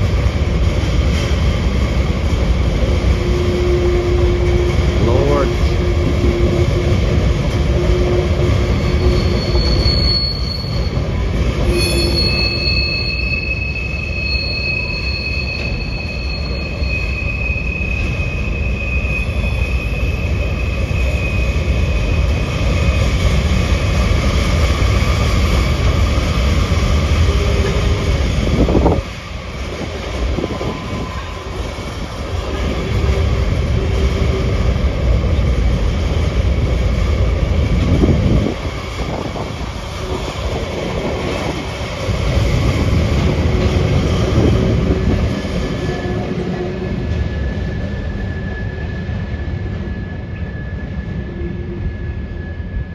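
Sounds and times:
low rumble of train wheels: 0:00.0 - 0:52.9
high-pitched wheel squeal: 0:07.7 - 0:22.4.

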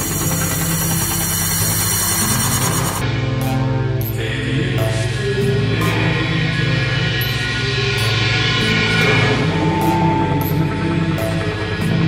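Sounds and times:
droning synth texture: 0:00.0 - 0:03.2, 0:08.6 - 0:12.0
pulsing low bass tones: 0:00.0 - 0:12.0.

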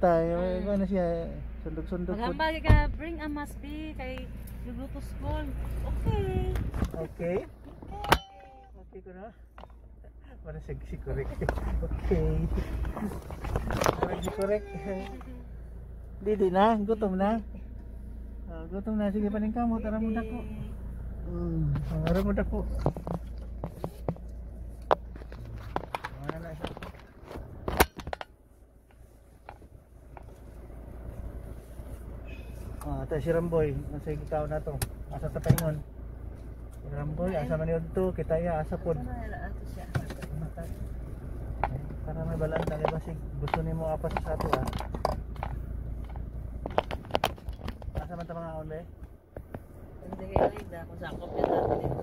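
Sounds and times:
car cabin rumble: 0:00.0 - 0:52.0.

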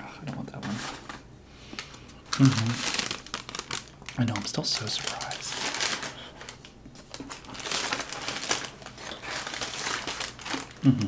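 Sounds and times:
paper bag crinkling: 0:01.8 - 0:11.0
person humming: 0:10.8 - 0:11.0.

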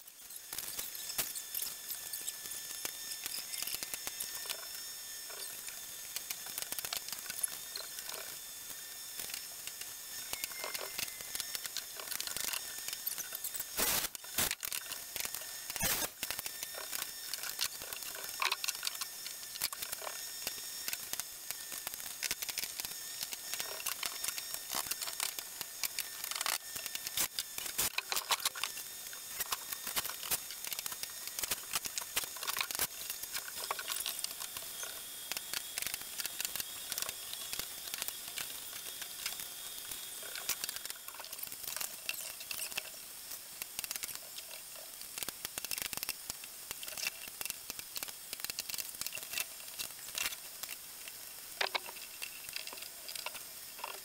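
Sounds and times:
steady hiss: 0:00.0 - 0:54.0
faint high steady tone: 0:10.2 - 0:11.5.

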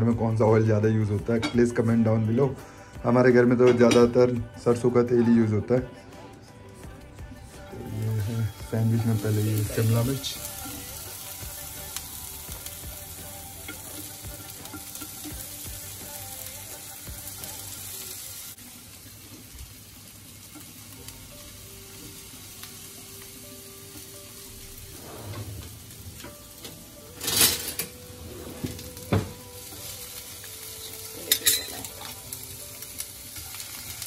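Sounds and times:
vegetables sizzling in oil: 0:07.6 - 0:34.0.

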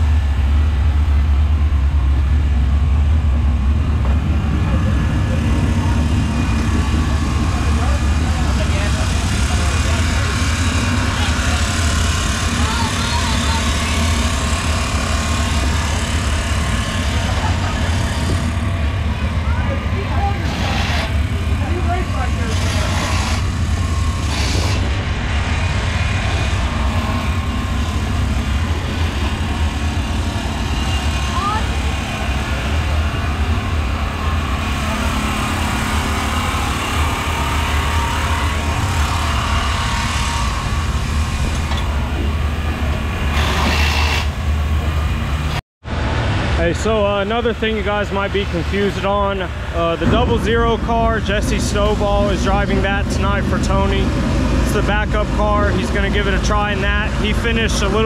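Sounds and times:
race car engines rumbling: 0:00.0 - 0:58.0
indistinct voices: 0:03.8 - 0:43.8.

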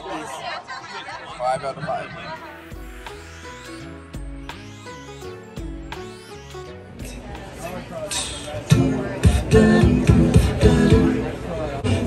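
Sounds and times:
loud regular beat: 0:02.4 - 0:07.6
vocal group singing pop song: 0:08.2 - 0:12.0.

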